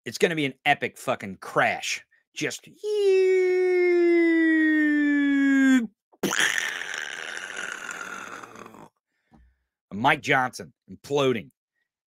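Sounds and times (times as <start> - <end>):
man imitating falling plane: 2.8 - 8.9.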